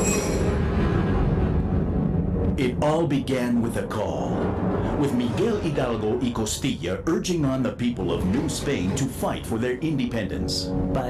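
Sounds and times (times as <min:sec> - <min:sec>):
high ringing tones: 0:00.0 - 0:00.7
dense bass rumbling soundtrack: 0:00.3 - 0:11.0.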